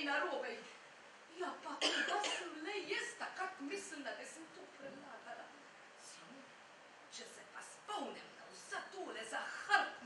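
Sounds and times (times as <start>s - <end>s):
woman speaking: 0.0s - 10.0s
woman coughing: 1.8s - 2.6s.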